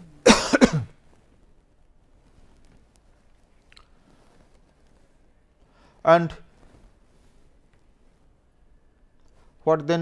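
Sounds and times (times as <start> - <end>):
man coughing: 0.2 - 0.9.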